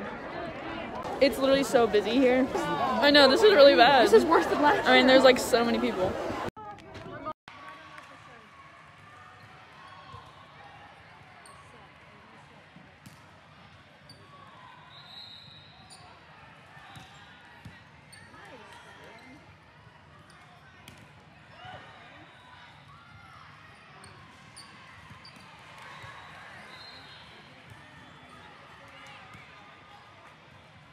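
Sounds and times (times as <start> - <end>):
faint voices: 0.0 - 7.2.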